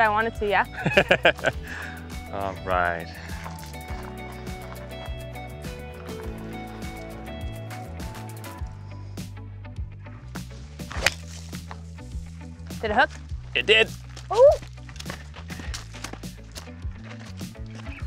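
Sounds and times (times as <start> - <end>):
background music with steady beat: 0.0 - 18.0
golf club striking ball: 10.9 - 11.4.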